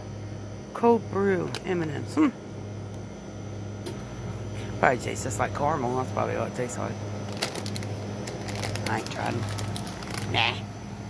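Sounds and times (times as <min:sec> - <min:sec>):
refrigerated coolers humming: 0:00.0 - 0:11.0.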